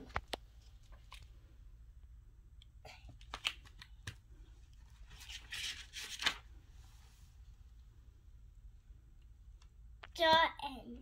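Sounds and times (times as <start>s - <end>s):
book pages turning: 0.0s - 1.3s, 3.1s - 6.6s.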